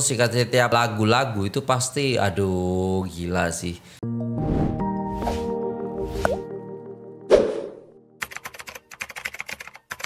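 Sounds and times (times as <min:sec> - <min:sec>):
keyboard typing clicks: 0:08.2 - 0:10.0.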